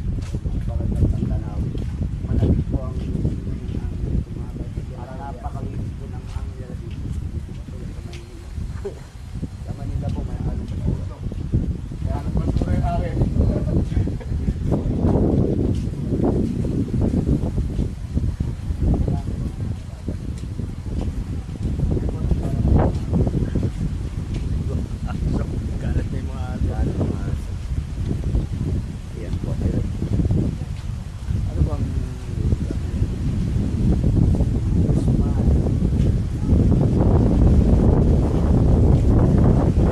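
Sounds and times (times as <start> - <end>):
wind buffeting microphone: 0.0 - 39.9.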